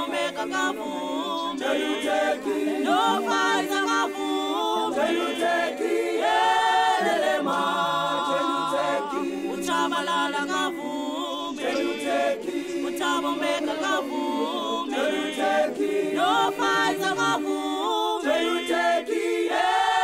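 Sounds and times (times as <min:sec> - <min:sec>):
choir singing in harmony: 0:00.0 - 0:20.0.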